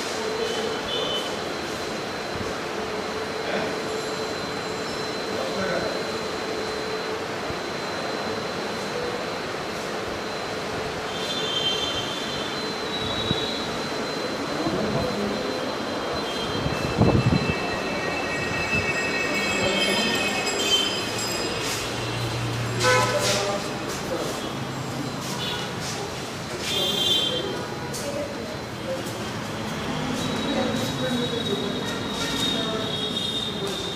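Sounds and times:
busy public building ambience: 0:00.0 - 0:33.9
thin high-pitched whine: 0:00.1 - 0:24.7
faint high tones: 0:03.0 - 0:24.8.

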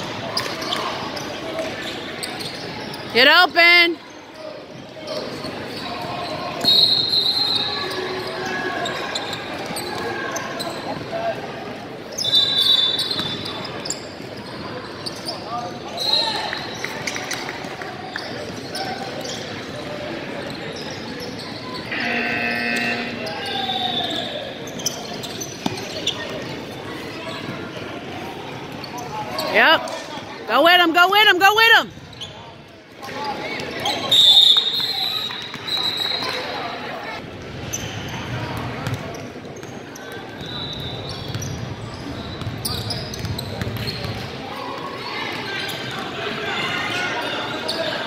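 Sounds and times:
echoing chatter of people: 0:00.0 - 0:48.0
short high shoe squeaks: 0:12.1 - 0:16.3, 0:20.4 - 0:26.5, 0:40.4 - 0:44.1.

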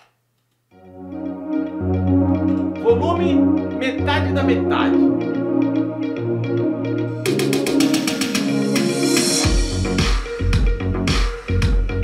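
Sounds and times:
music with rapid percussion: 0:07.2 - 0:12.0.

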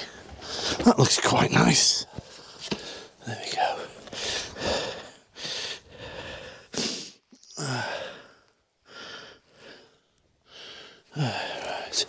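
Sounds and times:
man breathing close to microphone: 0:00.1 - 0:00.8, 0:03.8 - 0:12.0.

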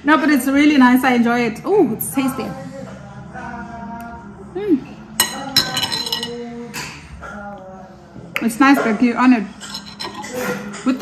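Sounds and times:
metal spoon clinking on dish: 0:05.2 - 0:06.5, 0:09.6 - 0:11.0.

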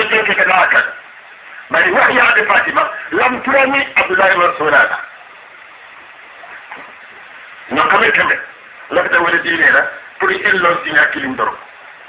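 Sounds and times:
recording hiss: 0:00.0 - 0:12.0.

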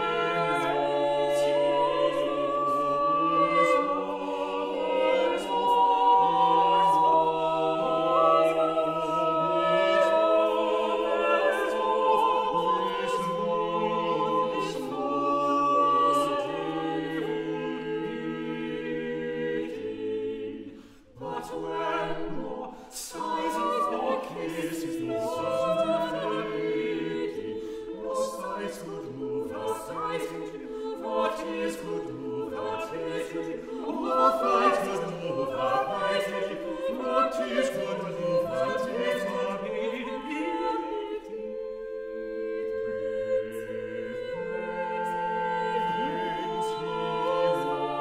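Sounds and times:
vocal ensemble singing madrigal: 0:00.0 - 0:48.0.

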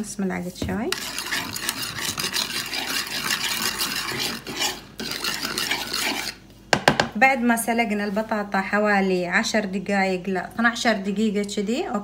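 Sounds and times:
spoon scraping wooden bowl: 0:00.9 - 0:06.4.

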